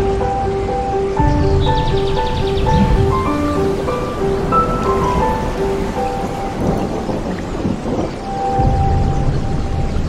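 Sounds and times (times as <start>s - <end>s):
intro music melody: 0.0s - 10.0s
rain: 0.0s - 10.0s
thunder rumble: 0.0s - 10.0s.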